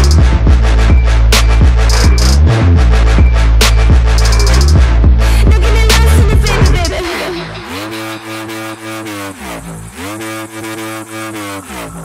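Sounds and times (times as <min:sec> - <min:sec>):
buzzy gliding synth note: 0:01.8 - 0:05.0, 0:05.6 - 0:12.0.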